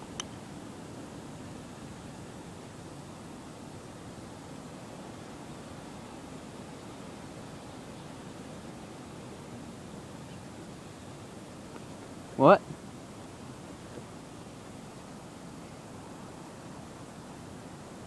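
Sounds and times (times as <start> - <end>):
outdoor background hiss: 0.0 - 18.0.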